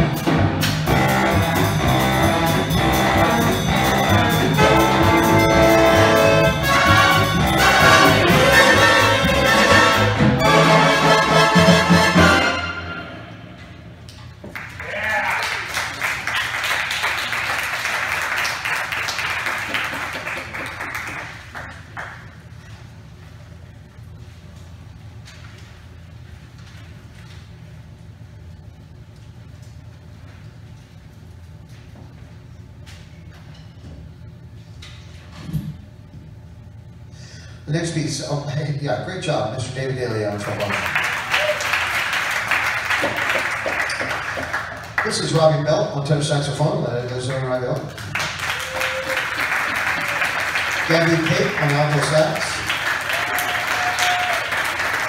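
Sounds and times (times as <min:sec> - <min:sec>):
jazz big band playing: 0:00.0 - 0:13.8
audience applause: 0:14.5 - 0:22.4, 0:40.3 - 0:45.5, 0:47.3 - 0:55.0.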